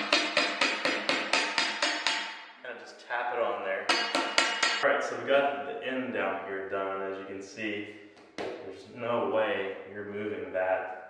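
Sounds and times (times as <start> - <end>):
hammer strikes ringing: 0.0 - 2.6, 3.8 - 4.9.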